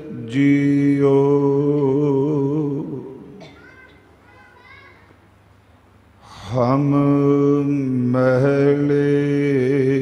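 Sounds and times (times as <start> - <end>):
faint children's voices: 3.4 - 5.2.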